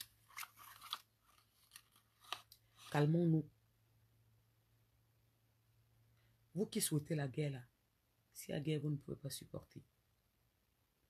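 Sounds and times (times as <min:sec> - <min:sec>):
woman speaking: 0:02.9 - 0:03.5, 0:06.6 - 0:07.7, 0:08.4 - 0:09.9.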